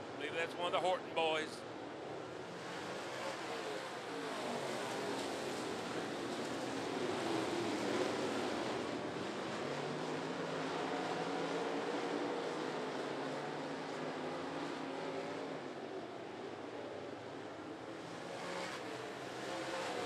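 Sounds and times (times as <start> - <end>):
race car engines droning: 0.0 - 20.0.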